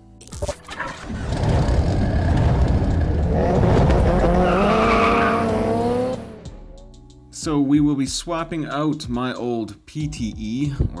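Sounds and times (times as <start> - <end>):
car engine revving: 0.9 - 6.6
tyre squeal: 4.2 - 5.5.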